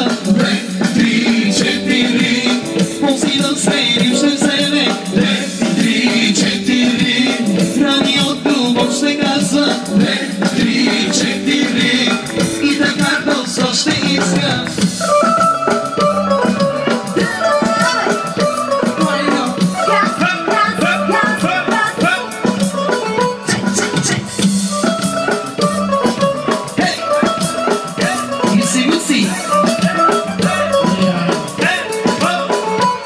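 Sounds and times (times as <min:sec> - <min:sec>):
steady drum beat: 0:00.0 - 0:33.0
clarinet melody: 0:14.9 - 0:33.0
ornamented clarinet melody: 0:15.0 - 0:18.9.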